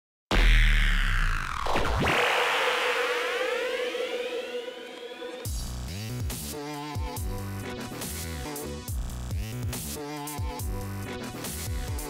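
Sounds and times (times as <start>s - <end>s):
rising synth sweeps: 0.3s - 5.6s
held electronic tone: 0.4s - 5.5s.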